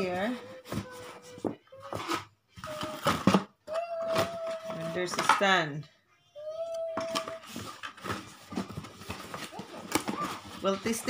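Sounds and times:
cardboard packaging scraping and rustling: 0.0 - 3.3, 7.1 - 11.0.

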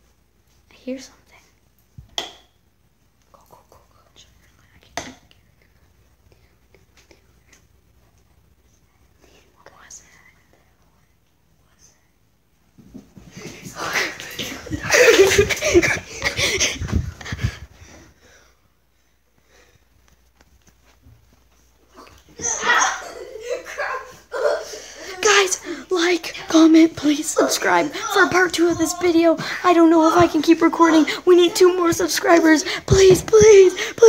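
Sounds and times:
faint whispering: 3.3 - 7.6, 8.6 - 12.2
child making breathy vocal sounds: 22.0 - 34.0.

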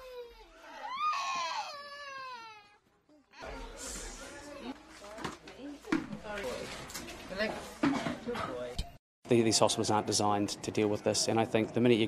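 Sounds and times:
young child crying: 0.0 - 3.7.

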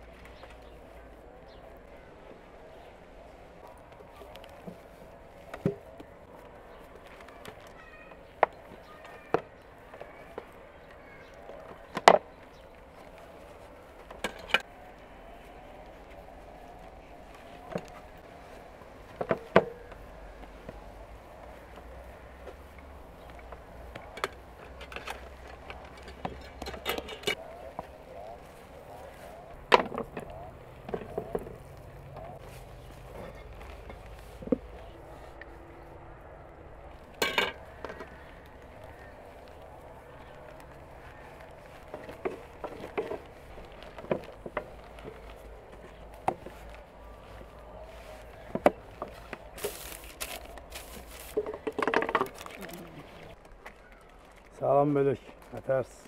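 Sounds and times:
faint background voices: 0.0 - 56.0.

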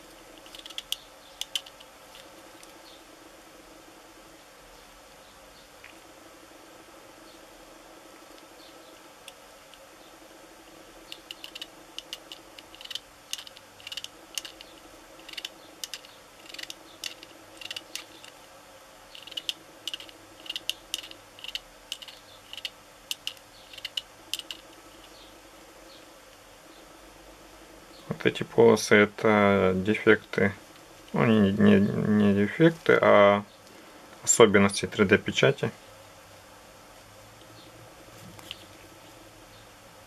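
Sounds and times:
room hum: 0.0 - 40.0
small plastic parts clicking: 0.4 - 2.7, 11.1 - 18.4, 19.2 - 25.2.

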